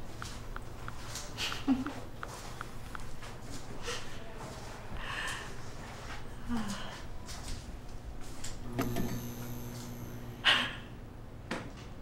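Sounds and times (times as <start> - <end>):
electrical hum with high whine: 0.0 - 12.0
switch click: 8.7 - 10.3.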